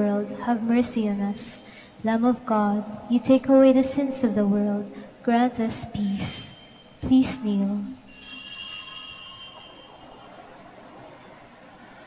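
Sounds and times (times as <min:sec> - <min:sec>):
small bell ringing: 0:08.0 - 0:11.5.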